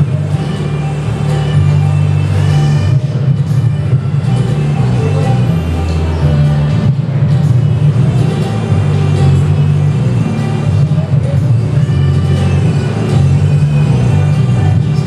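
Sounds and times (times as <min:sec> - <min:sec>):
instrumental backing track over loudspeaker: 0:00.0 - 0:15.0.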